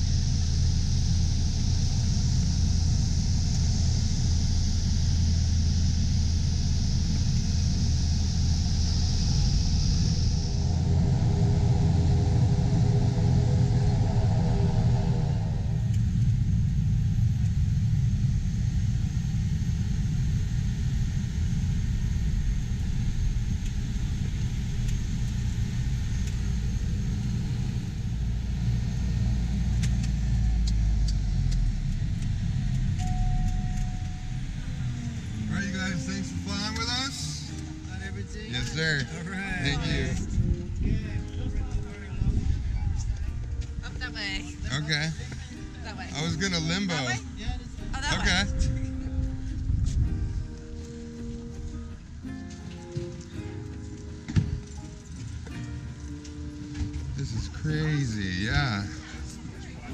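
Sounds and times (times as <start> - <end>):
high hiss: 0.0 - 40.6
propeller plane engine drone: 0.0 - 59.9.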